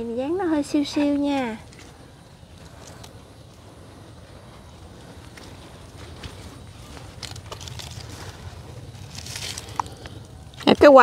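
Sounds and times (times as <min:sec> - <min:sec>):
low outdoor rumble: 0:00.0 - 0:11.0
rustling and handling noises: 0:05.2 - 0:11.0.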